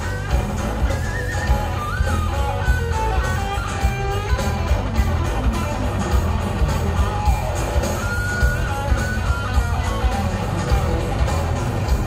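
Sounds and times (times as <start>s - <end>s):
electric guitar bending high notes: 0.0s - 12.0s
hard rock band playing: 0.0s - 12.0s.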